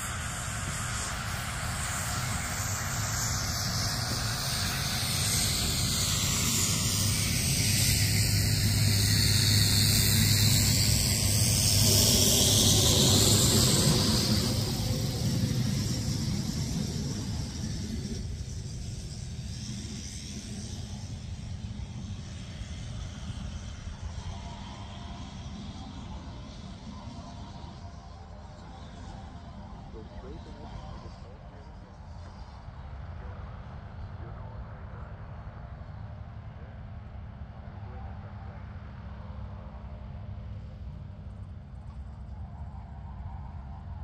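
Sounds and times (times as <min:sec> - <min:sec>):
aircraft passing overhead: 0:00.0 - 0:44.0
radial engine taxiing: 0:00.0 - 0:44.0.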